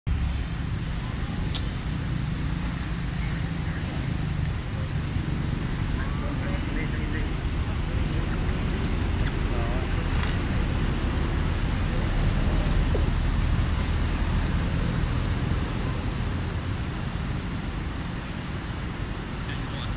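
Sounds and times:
low outdoor rumble: 0.1s - 19.9s
faint distant voices: 0.2s - 19.9s
sharp clicks: 1.4s - 1.8s.

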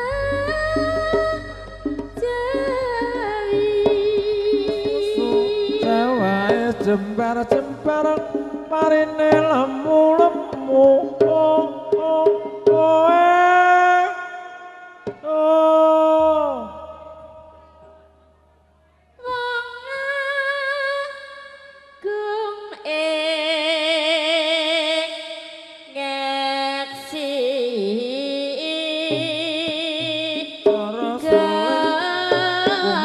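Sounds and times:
woman singing with vibrato: 0.0s - 17.6s, 19.2s - 33.0s.

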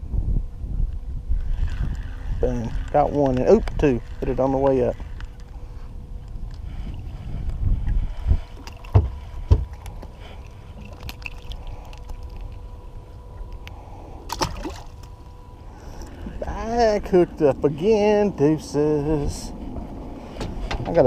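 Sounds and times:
faint steady tone: 0.0s - 20.8s
low rumble: 0.0s - 21.0s
sharp knocks on boat: 8.9s - 9.8s.

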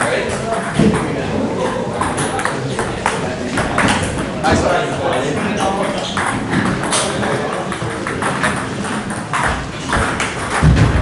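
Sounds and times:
spectators chattering: 0.0s - 10.8s.

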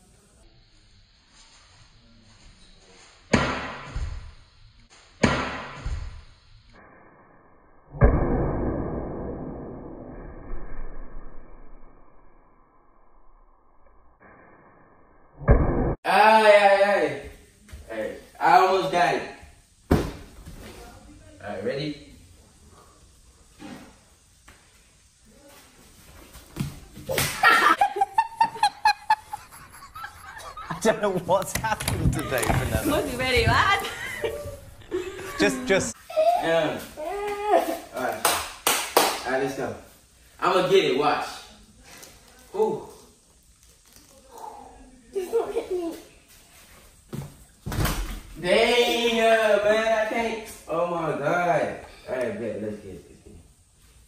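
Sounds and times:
people laughing: 27.4s - 36.0s.

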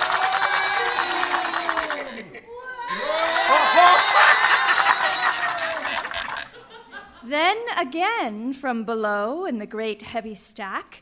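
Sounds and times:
people cheering and whooping: 0.0s - 6.6s.

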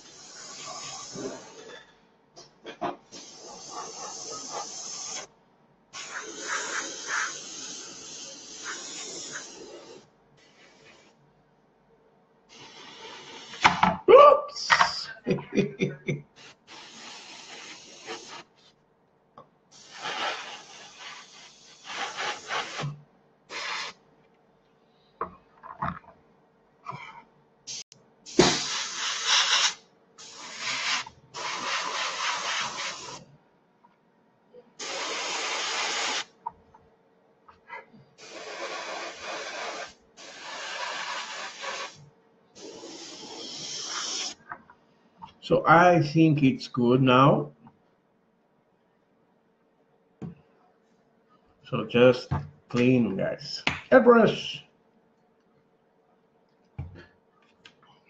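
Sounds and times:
airbrush spraying hiss: 0.0s - 1.7s, 3.1s - 5.3s, 6.0s - 11.2s, 12.5s - 13.7s, 16.4s - 18.7s, 19.7s - 22.9s, 23.5s - 24.0s, 27.7s - 33.2s, 34.8s - 36.3s, 38.2s - 44.4s.

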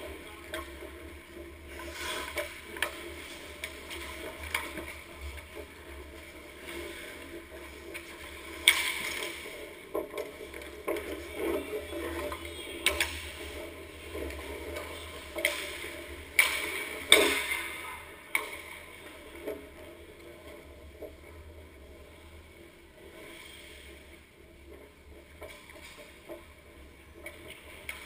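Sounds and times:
hockey sticks clacking: 0.0s - 20.2s
skate blades scraping on ice: 0.0s - 22.1s.

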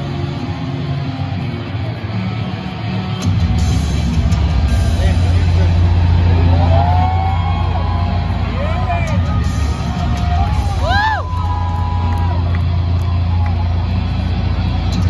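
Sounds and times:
bass-heavy music over loudspeakers: 0.0s - 15.0s
crowd voices and yells: 0.0s - 15.0s.

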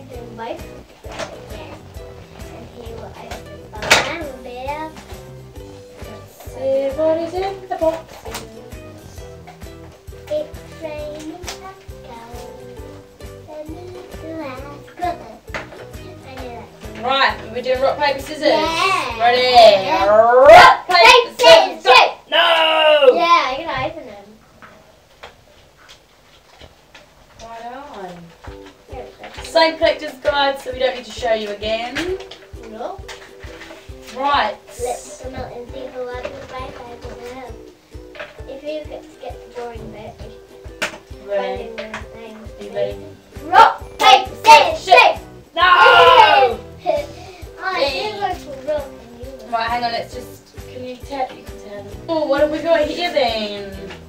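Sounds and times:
background music with steady beat: 0.0s - 24.1s, 27.4s - 54.0s
person speaking: 19.6s - 20.6s.

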